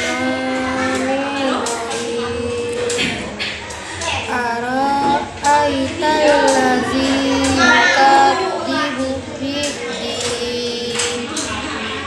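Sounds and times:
boy chanting melodically: 0.0 - 12.0.

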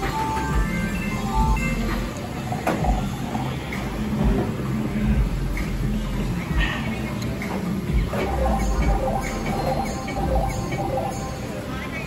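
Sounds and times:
background music with bass beat: 0.0 - 2.1, 2.8 - 11.4.

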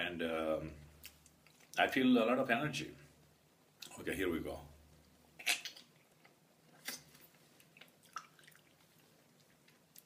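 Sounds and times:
wet mouth sounds eating fruit: 5.3 - 10.0.

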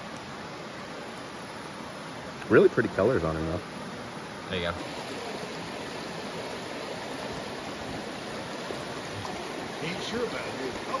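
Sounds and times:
creek water rushing over rocks: 0.0 - 11.0.

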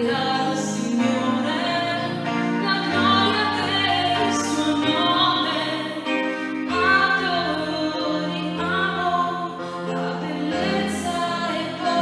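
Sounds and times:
voices singing sacred song: 9.9 - 12.0.

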